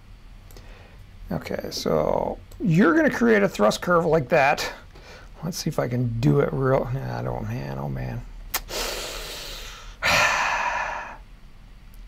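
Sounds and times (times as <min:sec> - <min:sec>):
man sighing: 0:08.7 - 0:11.2.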